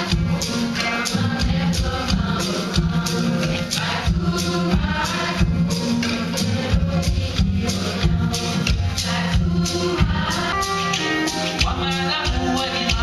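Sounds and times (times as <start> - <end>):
steady percussion beat: 0.0 - 13.0.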